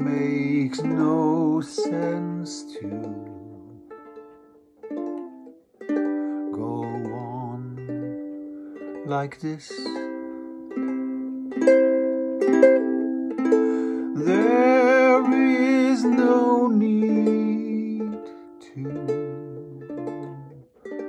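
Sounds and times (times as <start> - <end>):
man singing long note: 0.0 - 3.7, 6.5 - 8.0, 14.1 - 19.9
acoustic string instrument chords: 0.0 - 21.0.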